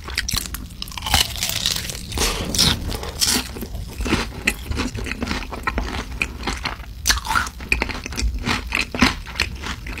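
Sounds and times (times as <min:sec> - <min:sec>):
chewing crunches: 0:00.0 - 0:10.0.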